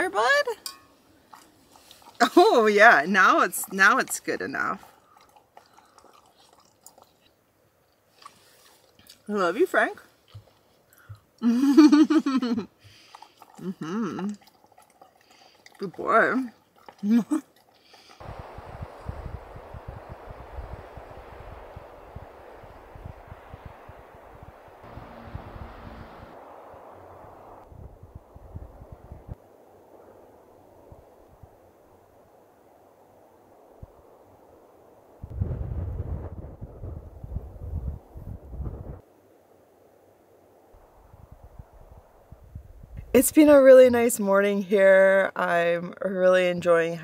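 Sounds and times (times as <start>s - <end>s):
wind gusts on microphone: 18.2s - 39.1s, 40.6s - 44.1s.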